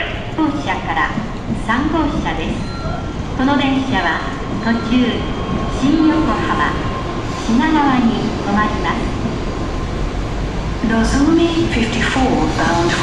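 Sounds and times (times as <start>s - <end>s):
loudspeaker platform announcement: 0.0s - 9.6s, 10.8s - 13.0s
train rolling with low rumble: 0.0s - 13.0s.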